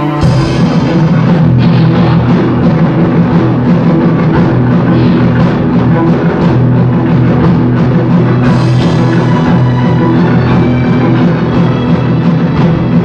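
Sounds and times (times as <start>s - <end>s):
strings and electric guitar ensemble: 0.0s - 13.0s.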